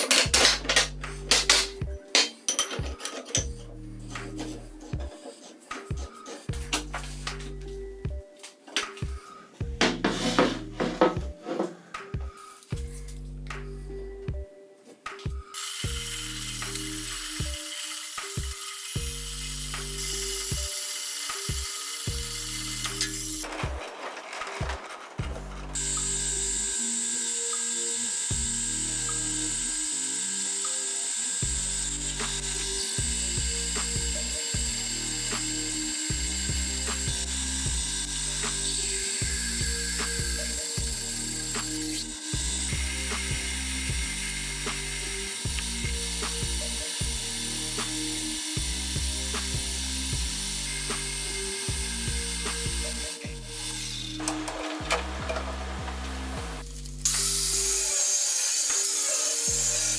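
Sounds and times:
background music with beat: 0.0 - 23.9, 28.2 - 30.0, 30.6 - 57.9
drill cutting into steel: 15.5 - 23.5, 25.7 - 59.9
metal lathe running: 25.2 - 59.9.

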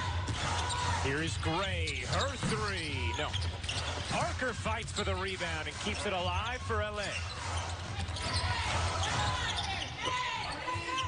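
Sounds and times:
sneakers squeaking: 0.0 - 11.0.

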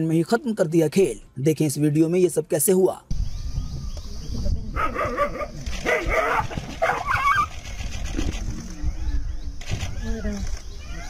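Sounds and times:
dog barking: 4.8 - 7.4
dog yelping: 4.8 - 7.5.

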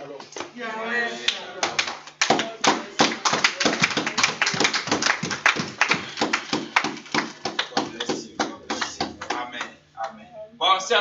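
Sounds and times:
hand clapping: 1.3 - 10.2.

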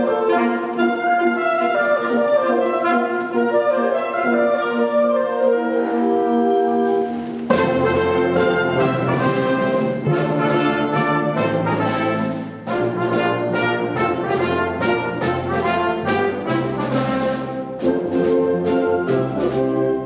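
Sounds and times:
wind band playing: 0.0 - 20.0.

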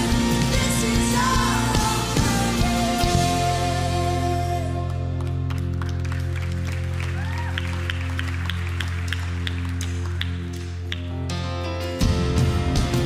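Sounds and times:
sustained keyboard and bass chord: 0.0 - 13.0
people clapping: 4.7 - 11.3.

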